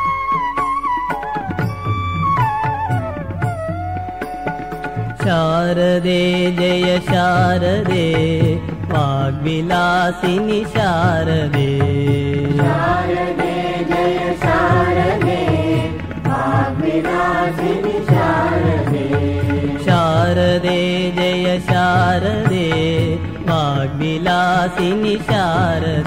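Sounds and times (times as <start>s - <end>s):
musical accompaniment: 0.0s - 6.8s
devotional chant-like singing: 5.1s - 26.0s.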